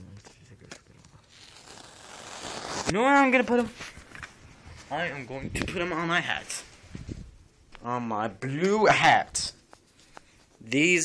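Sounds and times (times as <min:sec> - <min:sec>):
objects rubbing against microphone: 0:01.0 - 0:05.8, 0:06.4 - 0:07.4, 0:09.5 - 0:10.7
person speaking: 0:02.9 - 0:04.0, 0:04.8 - 0:06.7, 0:10.4 - 0:11.0.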